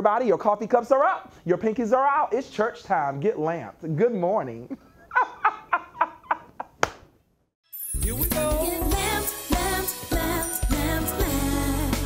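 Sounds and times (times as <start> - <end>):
man laughing heartily: 4.7 - 6.8
theme music: 7.7 - 12.0.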